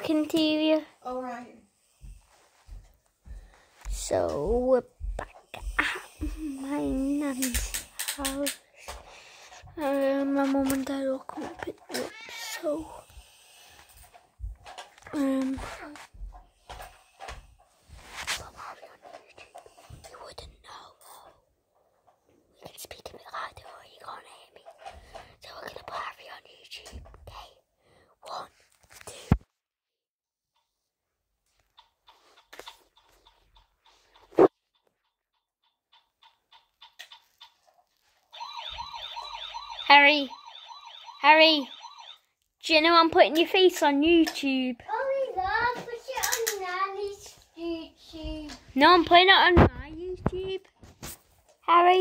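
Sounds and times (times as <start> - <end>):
plastic toy clicks and taps: 7.3 - 9.0, 35.9 - 37.6, 46.1 - 46.6
electronic toy siren wailing: 38.3 - 42.2.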